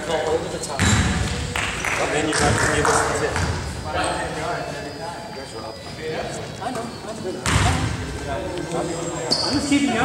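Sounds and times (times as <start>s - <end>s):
indistinct voices in echoing gymnasium: 0.0s - 10.0s.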